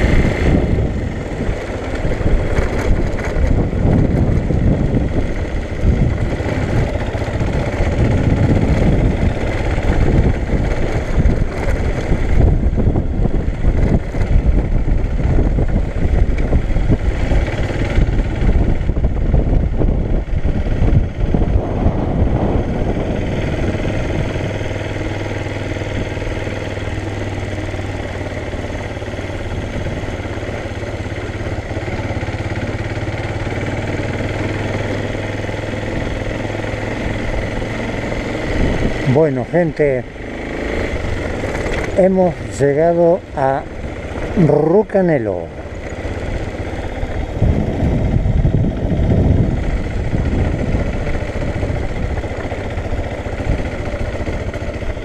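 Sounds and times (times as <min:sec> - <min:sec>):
motorcycle engine rumbling: 0:00.0 - 0:55.0.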